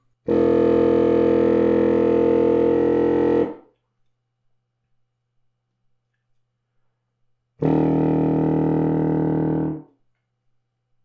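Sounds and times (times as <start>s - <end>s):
contrabassoon low sustained note: 0.3s - 3.6s, 7.6s - 9.8s.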